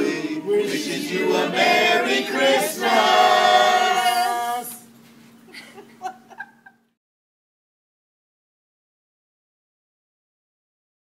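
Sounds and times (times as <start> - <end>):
group singing a cappella: 0.0 - 4.9.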